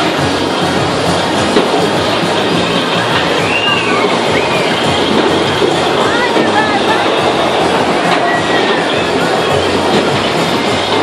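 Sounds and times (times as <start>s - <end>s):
bumper cars rumbling on steel floor: 0.0s - 11.0s.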